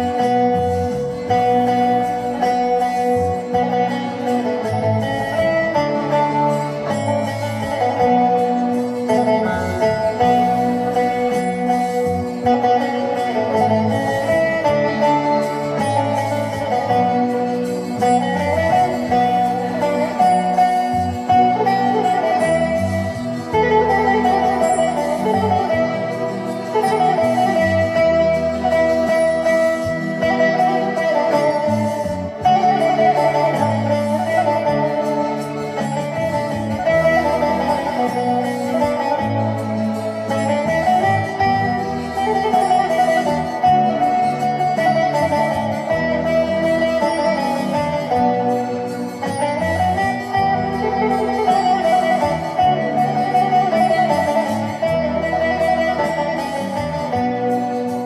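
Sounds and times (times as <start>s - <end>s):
long-necked lute melody: 0.0s - 58.0s.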